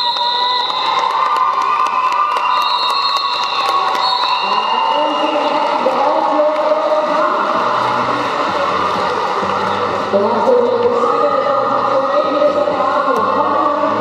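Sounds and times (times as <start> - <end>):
crowd cheering and shouting: 0.0 - 14.0.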